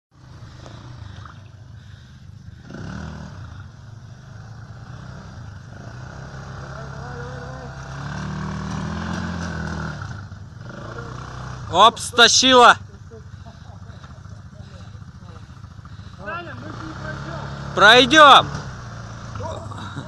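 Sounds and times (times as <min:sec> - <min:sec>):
quad bike engine revving: 0:00.2 - 0:20.0.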